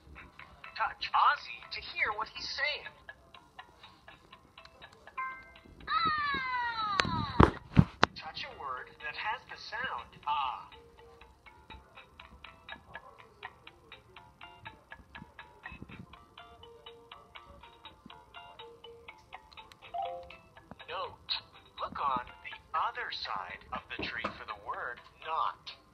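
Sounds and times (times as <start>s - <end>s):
ticking music loop: 18.2s - 20.6s.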